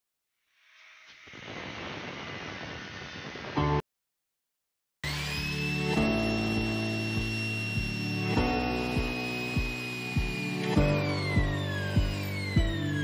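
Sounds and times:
angle grinder cutting steel: 5.0 - 13.0
electric drill motor whine: 5.0 - 13.0
background music with steady beat: 5.8 - 13.0.

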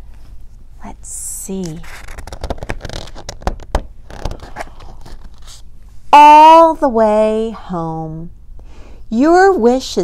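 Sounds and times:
stiff book page turning: 1.6 - 5.7.

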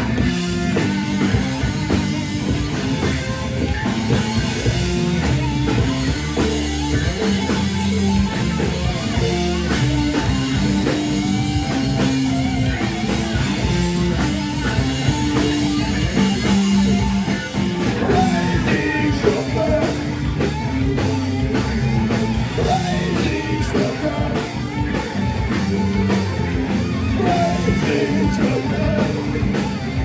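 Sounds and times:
drum kit: 0.0 - 30.0
electric guitar riff: 0.0 - 30.0.

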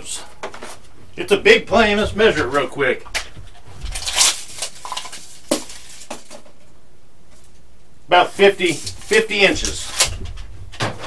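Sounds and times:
tape measure rustling scrape: 3.9 - 6.3.

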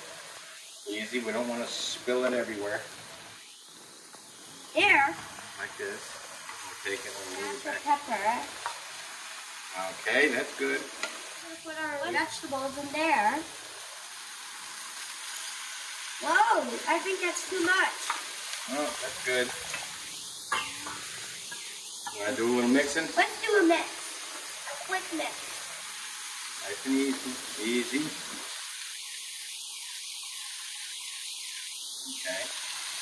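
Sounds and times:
food sizzling in a skillet: 0.0 - 33.0.

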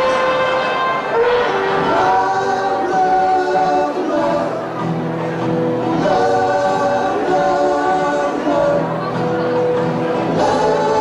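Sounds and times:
live rock band: 0.0 - 11.0
voices singing in harmony: 0.0 - 11.0.

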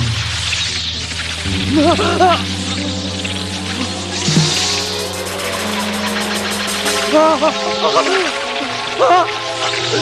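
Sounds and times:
low drones: 0.0 - 10.0
hissing high wash: 1.5 - 9.9.

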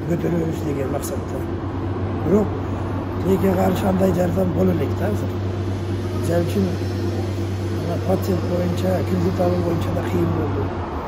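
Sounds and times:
man talking: 0.0 - 1.5, 2.2 - 5.4, 6.2 - 7.0, 7.8 - 10.8
steady low hum: 0.0 - 11.0.

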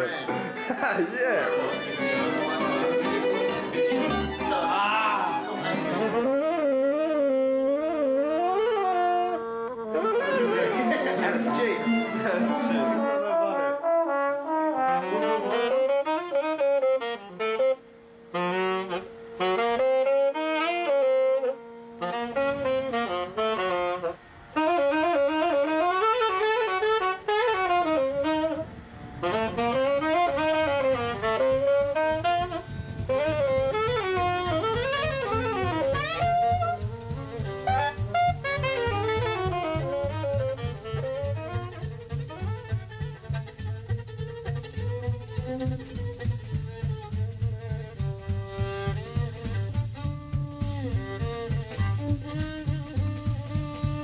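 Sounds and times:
gypsy orchestra music: 0.0 - 28.5, 29.2 - 54.0
low pulsing accompaniment: 6.0 - 54.0.

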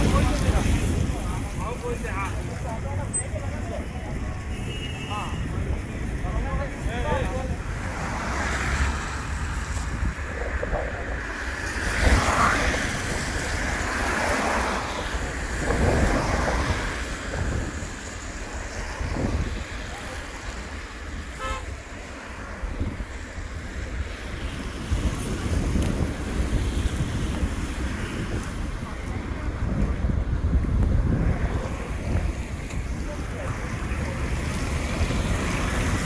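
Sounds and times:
traffic hiss on wet road: 0.0 - 36.0
wind buffeting microphone: 0.0 - 36.0.

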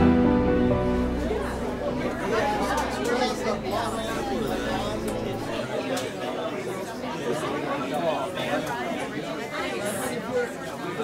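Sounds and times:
people talking at once: 0.5 - 11.0.

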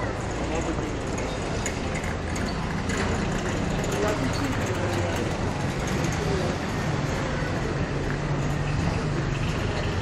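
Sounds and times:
town street noise: 0.0 - 10.0.

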